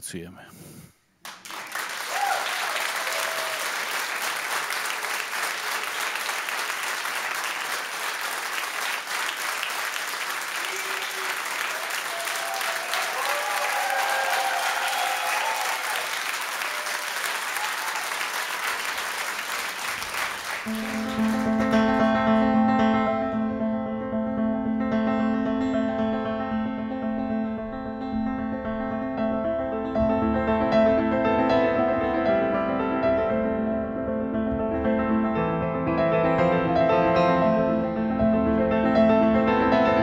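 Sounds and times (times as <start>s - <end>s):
audience applauding: 1.2s - 22.4s.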